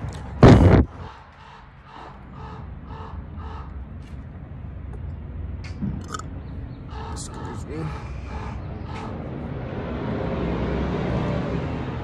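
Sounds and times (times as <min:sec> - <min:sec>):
passing vehicle rumble: 0:00.0 - 0:12.0.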